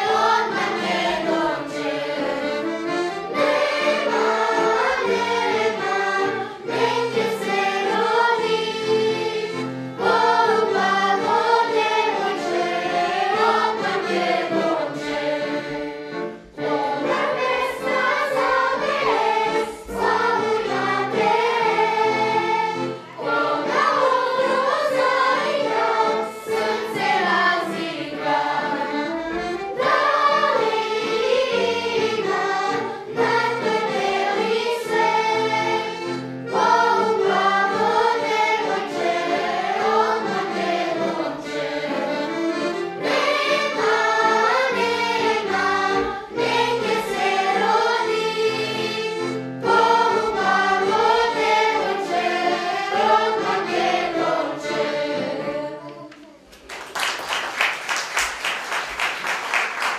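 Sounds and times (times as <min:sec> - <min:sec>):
violin: 0:00.0 - 0:56.4
children's choir singing: 0:00.0 - 0:59.9.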